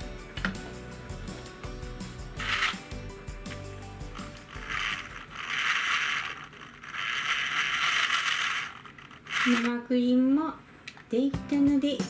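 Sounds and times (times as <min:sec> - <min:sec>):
toy mixer motor whirring: 0:02.4 - 0:02.8, 0:04.2 - 0:09.8.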